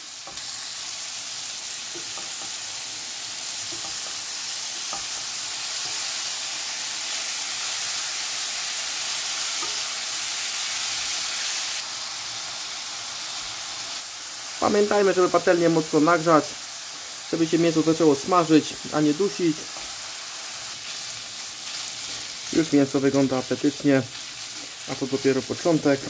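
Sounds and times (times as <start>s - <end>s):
meat sizzling in a frying pan: 0.0s - 26.0s
spatula tapping: 1.9s - 2.6s, 3.6s - 4.2s, 4.8s - 5.2s.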